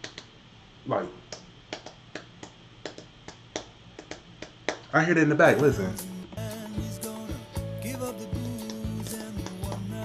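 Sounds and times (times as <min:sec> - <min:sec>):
finger snaps: 0:00.0 - 0:00.4, 0:01.3 - 0:04.9, 0:08.2 - 0:10.0.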